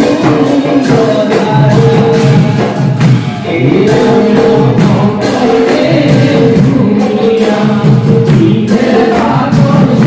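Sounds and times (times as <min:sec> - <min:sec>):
chorus singing devotional chant: 0:00.0 - 0:10.0.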